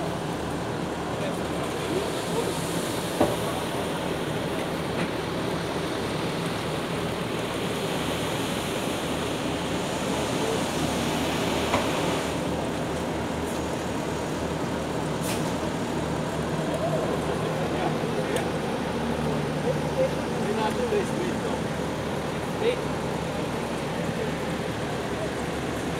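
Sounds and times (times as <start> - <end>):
paver and truck engines running: 0.0 - 25.9.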